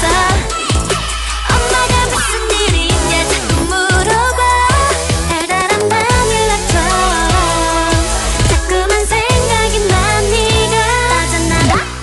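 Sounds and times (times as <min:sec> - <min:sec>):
electronic kick drum: 0:00.0 - 0:05.4, 0:06.1 - 0:10.8
dance-pop song: 0:00.0 - 0:12.0
deep bass: 0:00.0 - 0:12.0
wavering melodic lead: 0:06.1 - 0:09.2.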